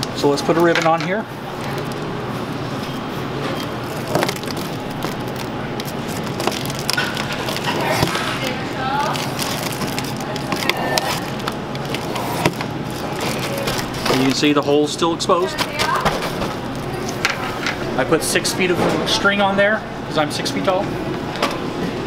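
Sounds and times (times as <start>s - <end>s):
steady background hum: 0.0s - 22.0s
foil balloon crinkling: 3.6s - 14.7s, 15.4s - 17.1s
ribbon rustling: 3.6s - 14.7s.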